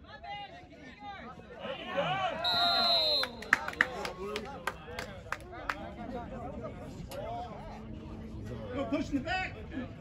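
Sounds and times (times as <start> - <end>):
murmur of spectators' voices: 0.0 - 10.0
sharp handclaps: 3.2 - 5.8.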